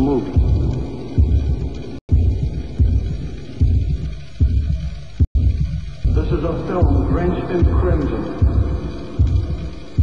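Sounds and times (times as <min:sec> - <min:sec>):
low repeating pulse: 0:00.0 - 0:10.0
steady low hum: 0:00.0 - 0:10.0.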